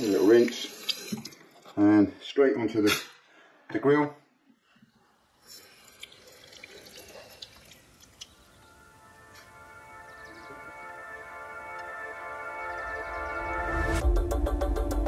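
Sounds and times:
tap water running in a sink: 0.0s - 1.5s, 5.5s - 8.4s
water drips: 0.0s - 1.7s, 5.4s - 9.5s
background music: 8.4s - 15.0s.

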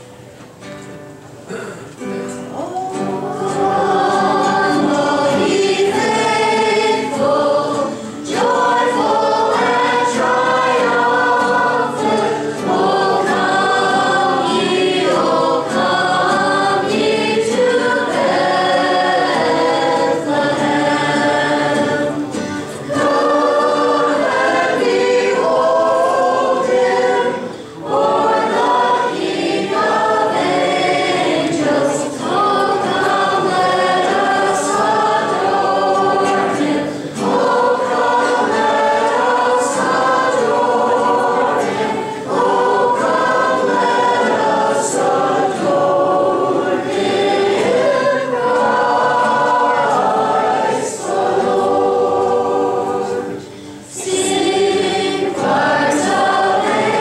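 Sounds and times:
acoustic guitars strumming: 0.0s - 57.0s
girls singing a carol: 2.9s - 57.0s.

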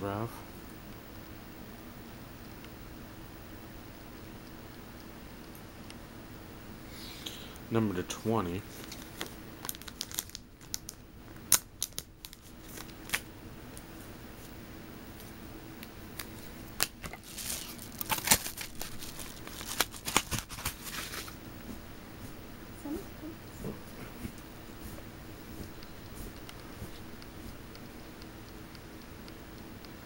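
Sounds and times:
scissors snipping packaging: 16.8s - 21.2s
paper and plastic tearing: 16.8s - 21.4s.

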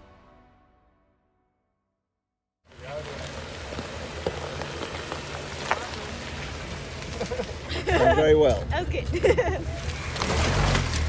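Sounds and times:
engine running low: 2.7s - 11.0s
tyres squelching through mud: 2.7s - 11.0s.

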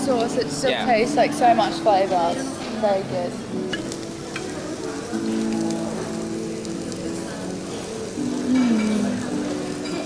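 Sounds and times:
background music with held notes: 0.0s - 10.0s
meat sizzling on a grill: 0.0s - 10.0s.

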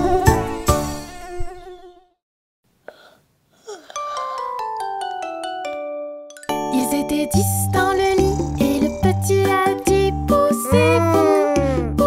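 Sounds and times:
cartoon mosquito buzzing: 7.4s - 11.8s.

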